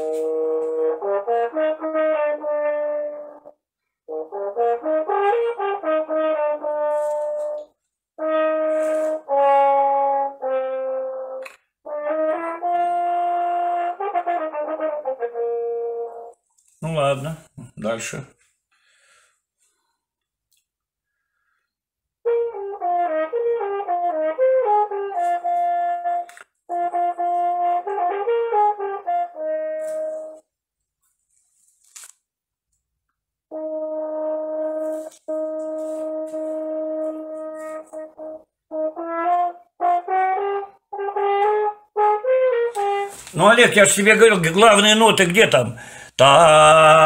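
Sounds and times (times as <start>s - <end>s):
french horn playing: 0.0s - 16.4s, 22.2s - 30.5s, 33.5s - 47.0s.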